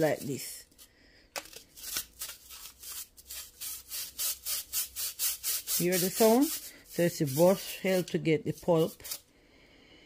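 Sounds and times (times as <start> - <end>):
brush scrubbing metal mesh: 1.8 - 9.2.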